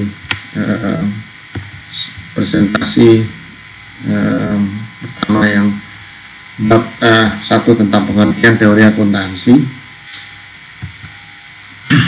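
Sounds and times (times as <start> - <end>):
man speaking: 0.0 - 1.3, 1.9 - 6.0, 6.6 - 9.9.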